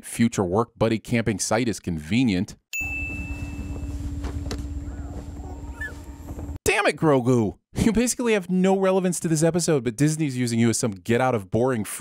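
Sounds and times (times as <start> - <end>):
bell-like ding: 2.8 - 4.1
steady low hum: 2.8 - 6.6.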